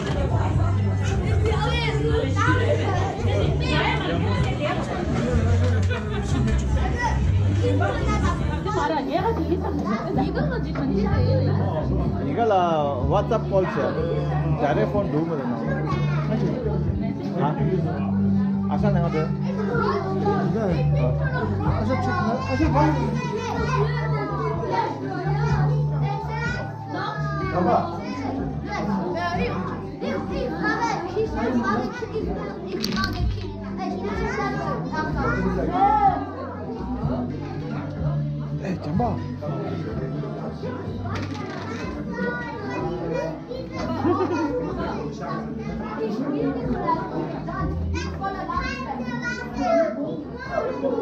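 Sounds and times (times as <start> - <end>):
background music: 0.0 - 51.0
children chattering and calling out: 0.0 - 51.0.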